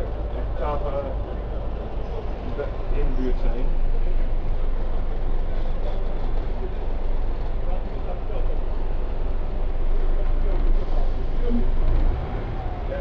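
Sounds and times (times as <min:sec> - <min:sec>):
bus engine rumble: 0:00.0 - 0:13.0
passengers' voices: 0:00.0 - 0:13.0.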